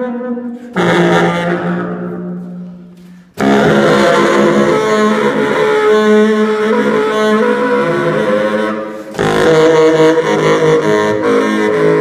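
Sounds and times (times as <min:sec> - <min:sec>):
bass saxophone: 0:00.0 - 0:12.0.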